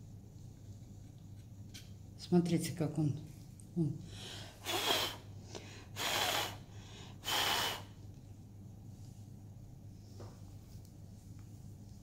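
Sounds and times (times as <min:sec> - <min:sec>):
person blowing breathy puffs: 0:04.4 - 0:08.0.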